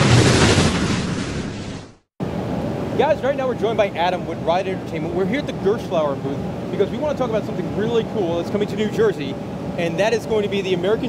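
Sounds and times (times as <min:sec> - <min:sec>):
whoosh and rumble sound effect: 0:00.0 - 0:02.0.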